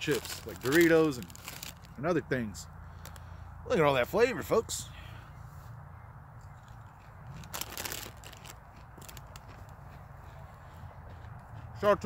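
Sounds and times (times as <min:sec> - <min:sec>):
potato chip crunching: 0:00.0 - 0:02.0, 0:07.3 - 0:09.4.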